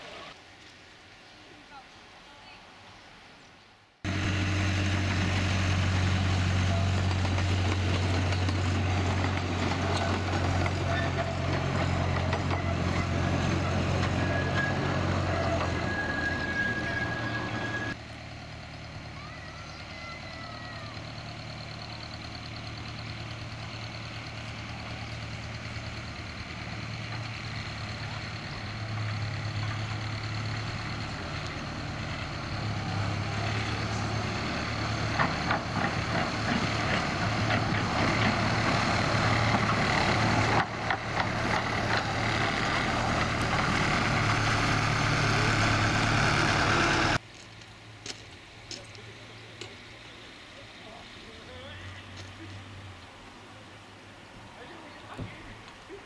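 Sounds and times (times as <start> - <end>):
miniature locomotive droning: 4.1 - 56.0.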